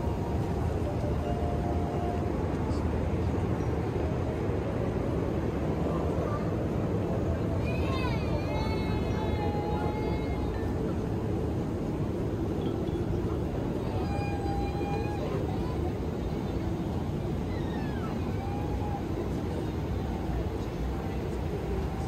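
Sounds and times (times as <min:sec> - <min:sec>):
faint voices or tones: 0:00.0 - 0:05.2
airliner cabin engine rush: 0:00.0 - 0:22.0.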